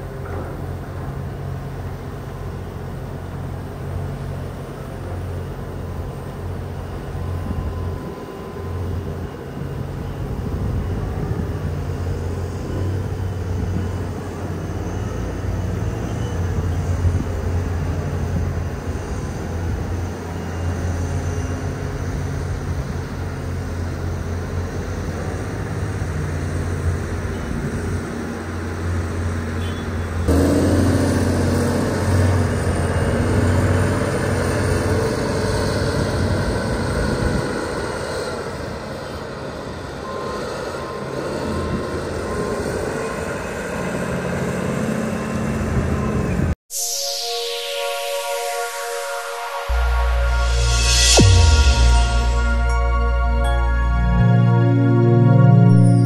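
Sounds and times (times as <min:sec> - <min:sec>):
wheel loader diesel engines droning: 0:00.0 - 0:46.6.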